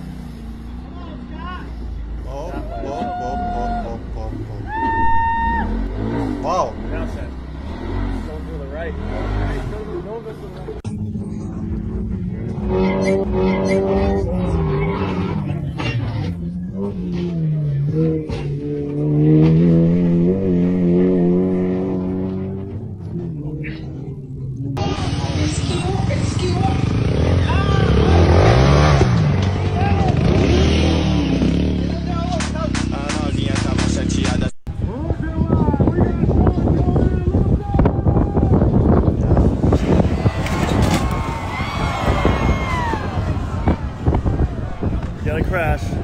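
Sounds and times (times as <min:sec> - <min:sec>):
person shouting: 0:02.3 - 0:05.8
car engine at high revs: 0:05.6 - 0:34.4.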